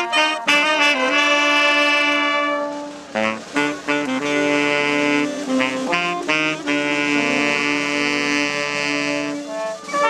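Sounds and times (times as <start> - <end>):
wind band holding a chord: 0.0 - 10.0.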